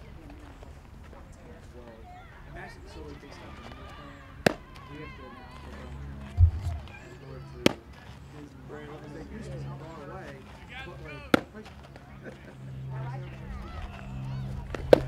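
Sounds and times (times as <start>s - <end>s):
baseball smacking into mitt: 4.4s - 4.8s, 14.7s - 15.0s
dull low thump: 6.3s - 6.9s.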